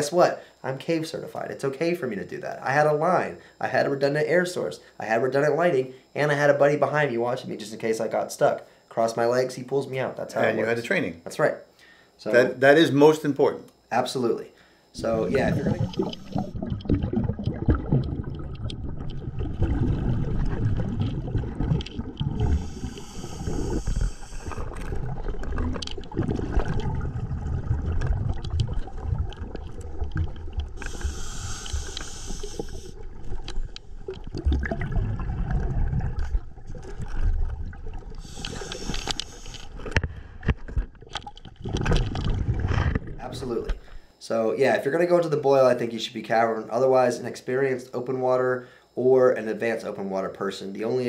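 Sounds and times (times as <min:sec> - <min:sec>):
underwater rumbling and scraping: 0:15.0 - 0:44.0
regulator bubbles hissing: 0:15.0 - 0:44.1.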